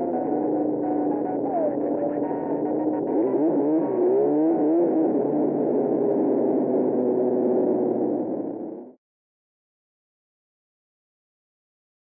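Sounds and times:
snowmobile engine revving: 0:00.0 - 0:08.9.

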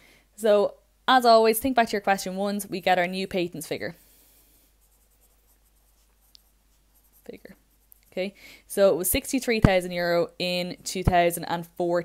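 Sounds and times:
faint pencil scratching on paper: 0:03.2 - 0:08.4.

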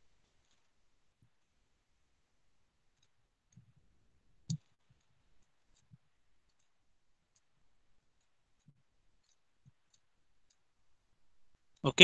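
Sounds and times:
faint ticks: 0:02.9 - 0:11.0.

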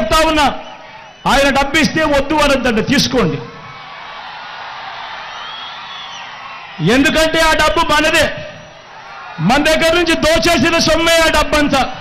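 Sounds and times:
crowd cheering: 0:00.0 - 0:12.0
faint whistle: 0:00.5 - 0:01.4, 0:05.3 - 0:06.3.

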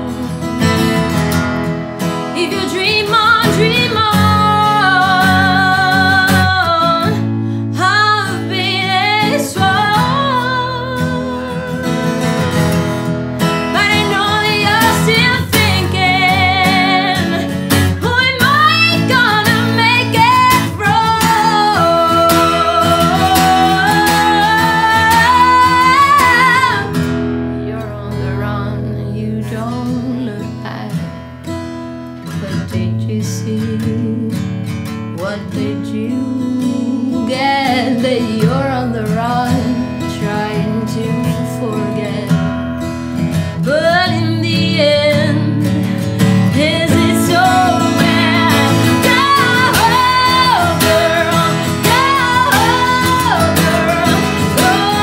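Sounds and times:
woman singing: 0:00.0 - 0:31.6, 0:32.2 - 0:55.0
acoustic guitar: 0:00.0 - 0:55.0.

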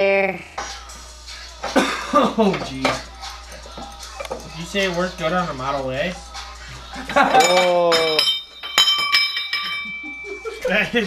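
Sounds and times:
metal object clinking on concrete: 0:07.2 - 0:10.4.

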